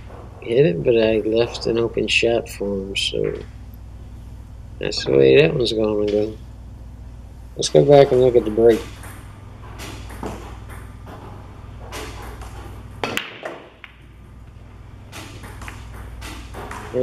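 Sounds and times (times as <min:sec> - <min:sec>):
pool balls clicking: 0:00.0 - 0:04.0, 0:04.8 - 0:06.4, 0:07.6 - 0:17.0
cue ball cracking into balls: 0:07.9 - 0:17.0.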